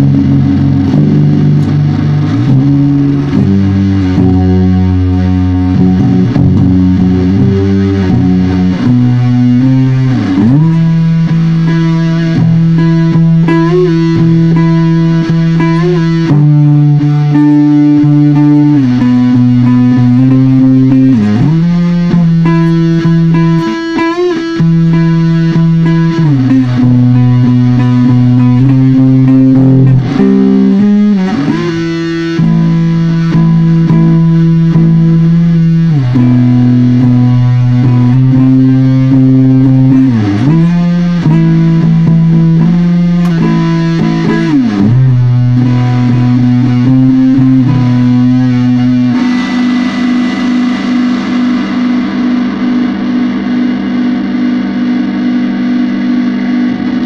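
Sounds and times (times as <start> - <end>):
distorted electric guitar chords: 0.0 - 57.0.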